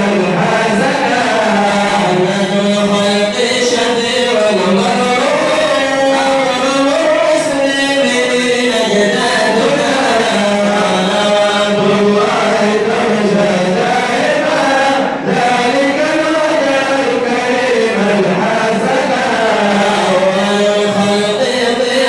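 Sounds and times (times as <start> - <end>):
group of men chanting: 0.0 - 22.0
man singing into a microphone: 0.0 - 22.0.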